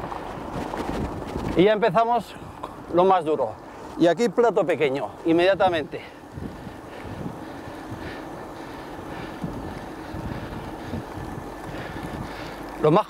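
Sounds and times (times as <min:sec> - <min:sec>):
wind on microphone: 0:00.0 - 0:01.7, 0:05.6 - 0:12.6
low road rumble: 0:00.0 - 0:13.0.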